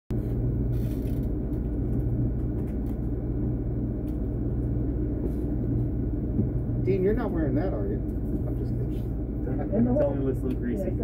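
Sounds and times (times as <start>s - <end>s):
electronics and cooling fans humming: 0.1s - 11.0s.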